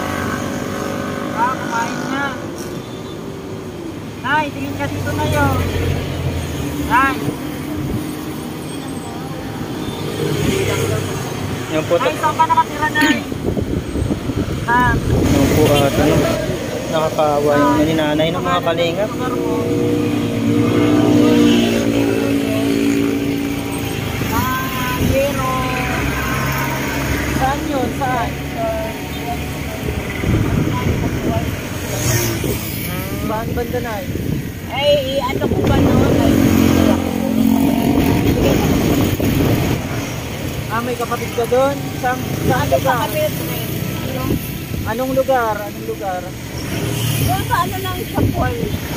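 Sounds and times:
road traffic rumble: 0.0s - 48.9s.

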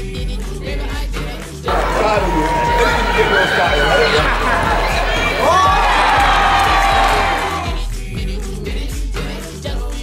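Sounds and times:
pop music with steady beat: 0.0s - 10.0s
rising whoop: 1.7s - 7.8s
players shouting and cheering: 1.7s - 7.9s.

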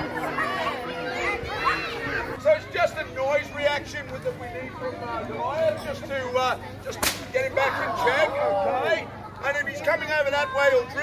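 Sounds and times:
whip crack: 7.0s - 7.3s.

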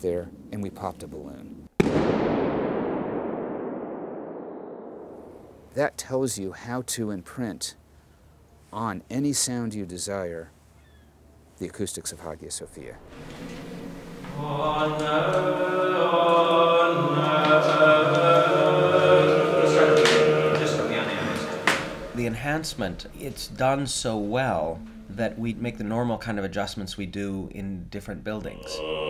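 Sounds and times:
dense echo reverberation: 1.8s - 5.8s, 12.7s - 26.6s, 28.5s - 29.0s
voices singing chant: 12.8s - 26.2s, 28.5s - 29.0s.

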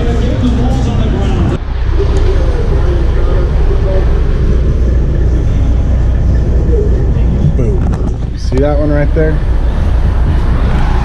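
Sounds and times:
faint voices talking: 0.0s - 11.0s
loud low rumble: 0.0s - 11.0s.

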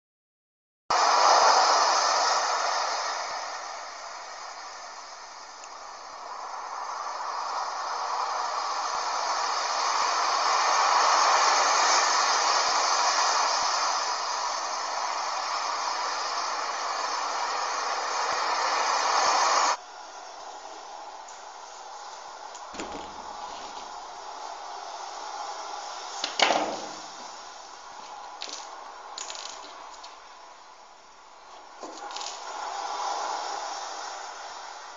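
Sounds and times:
loud steady rushing hiss: 0.9s - 34.9s.

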